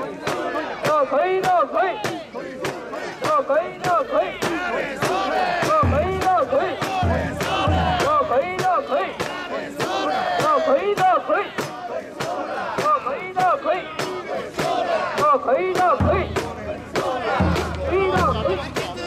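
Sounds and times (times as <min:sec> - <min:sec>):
crowd shouting a rhythmic chant: 0:00.0 - 0:19.0.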